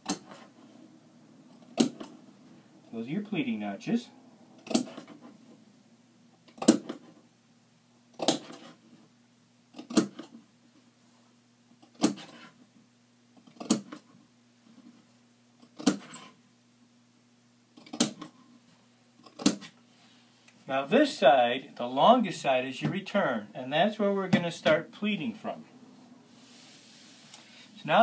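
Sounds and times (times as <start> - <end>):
faint low hum: 0.0 - 28.0.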